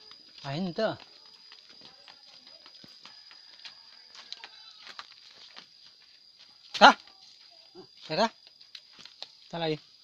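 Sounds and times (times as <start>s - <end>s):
sandal footsteps on dirt path: 0.0s - 10.0s.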